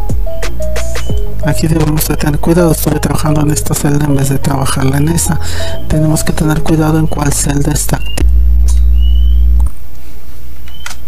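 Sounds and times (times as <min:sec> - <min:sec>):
low electrical hum: 0:01.3 - 0:11.0
faint high chirps: 0:08.0 - 0:09.6.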